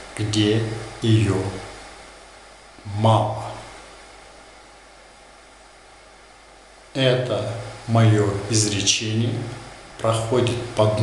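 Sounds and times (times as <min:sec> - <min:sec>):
faint low hum: 0:00.0 - 0:11.0
steady hiss: 0:00.0 - 0:11.0.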